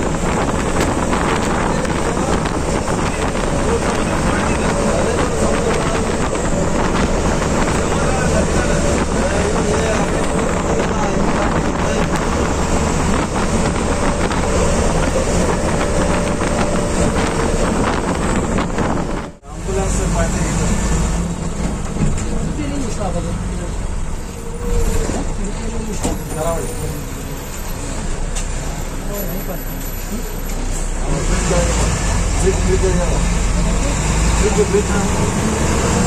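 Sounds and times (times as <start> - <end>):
bus engine idling: 0.0 - 36.0
road and wind noise: 0.0 - 36.0.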